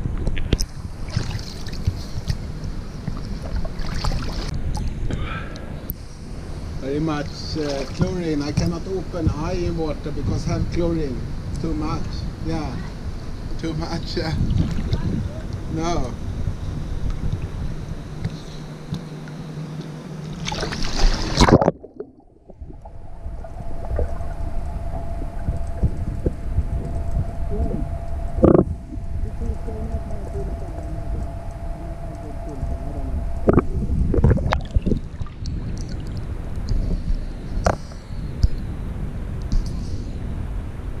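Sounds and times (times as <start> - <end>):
muffled underwater hum: 0.0 - 41.0
water splashing: 0.4 - 4.9, 7.2 - 8.4, 20.2 - 37.0
pool water sloshing: 0.6 - 4.9, 7.2 - 8.7, 18.4 - 26.5
underwater knocks and bubbles: 20.5 - 27.3, 33.4 - 37.0.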